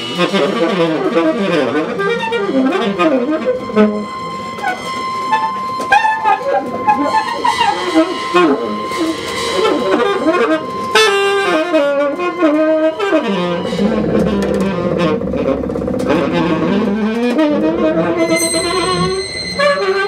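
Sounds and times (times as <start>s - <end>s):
bowed double bass: 0.0s - 20.0s
drums: 0.0s - 20.0s
saxophone playing: 0.0s - 20.0s.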